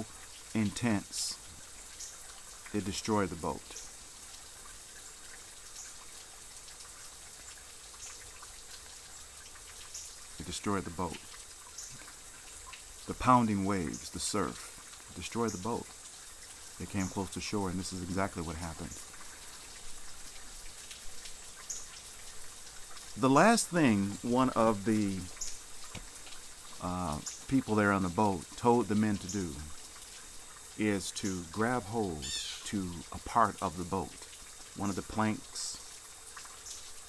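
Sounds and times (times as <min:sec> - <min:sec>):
water trickling and dripping: 0:00.0 - 0:37.0.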